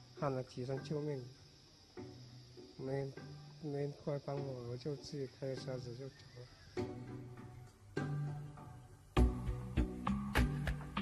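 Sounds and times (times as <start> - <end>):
faint high hiss: 0.0 - 11.0
man speaking: 0.2 - 1.4, 2.8 - 6.5.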